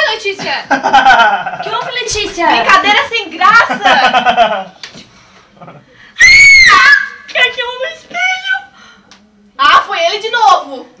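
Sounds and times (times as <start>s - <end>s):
woman screaming: 6.2s - 7.3s.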